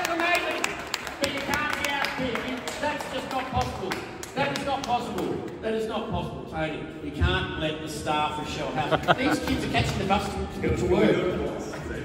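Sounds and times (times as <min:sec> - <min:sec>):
sharp claps: 0:00.0 - 0:05.6
crowd voices: 0:08.5 - 0:12.0.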